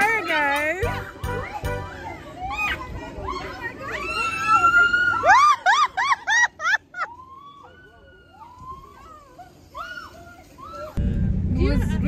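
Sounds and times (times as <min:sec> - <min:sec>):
people shouting and chattering: 0:00.0 - 0:11.0.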